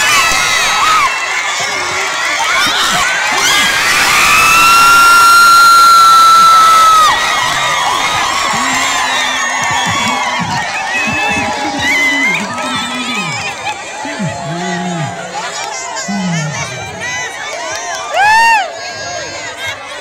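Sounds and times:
crowd cheering and shouting: 0:00.0 - 0:20.0
children's voices: 0:07.8 - 0:20.0
men calling out: 0:08.1 - 0:17.4.

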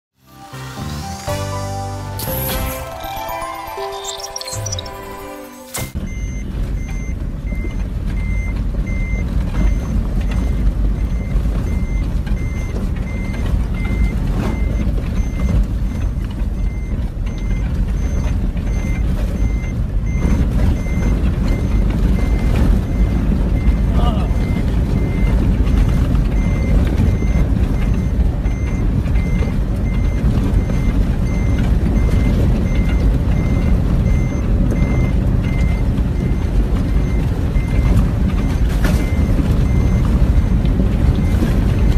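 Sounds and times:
electronic warning beep: 0:02.1 - 0:41.9
off-road vehicle driving fast: 0:06.0 - 0:41.9.

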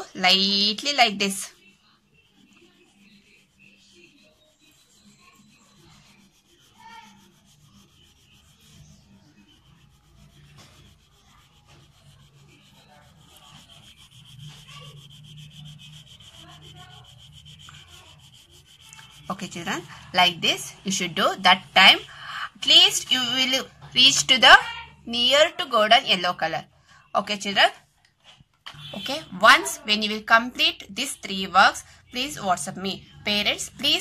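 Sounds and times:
crayon rubbing on paper: 0:00.3 - 0:24.3.

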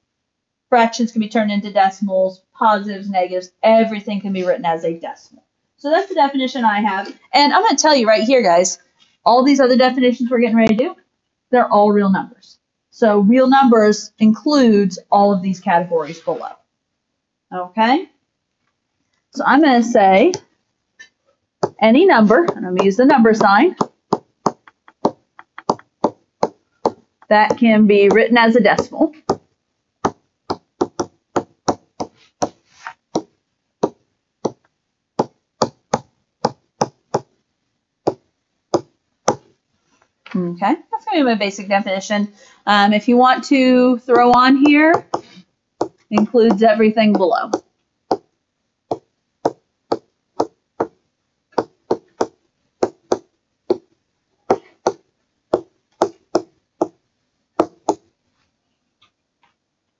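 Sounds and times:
stylus tapping on tablet screen: 0:21.6 - 0:37.4, 0:38.1 - 0:39.5, 0:44.1 - 0:48.3, 0:48.9 - 0:53.9, 0:54.5 - 0:57.0, 0:57.6 - 0:58.1.

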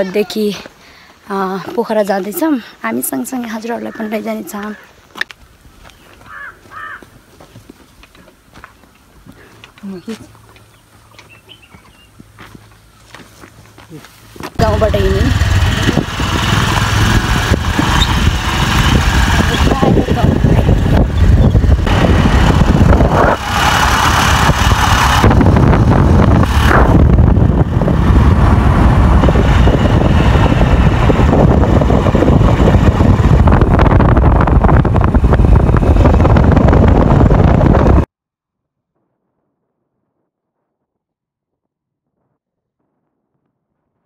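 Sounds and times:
motor scooter engine running: 0:14.6 - 0:38.1
wind buffeting microphone: 0:14.6 - 0:38.1.

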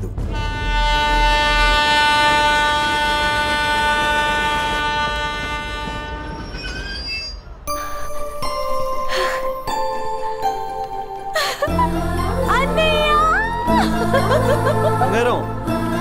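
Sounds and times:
train horn blast: 0:00.2 - 0:06.6.

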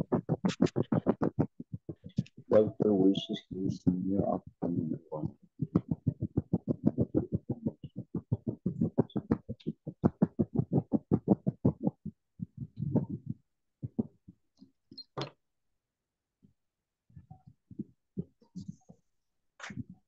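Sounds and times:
choppy voice over video call: 0:00.0 - 0:11.8, 0:12.5 - 0:13.4.

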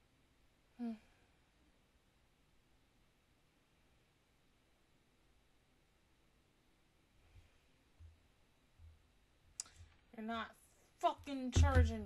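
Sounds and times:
soft low thuds: 0:11.1 - 0:12.0.

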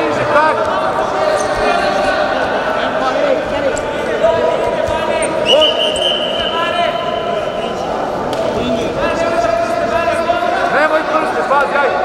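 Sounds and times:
referee's whistle long blast: 0:05.4 - 0:07.3.

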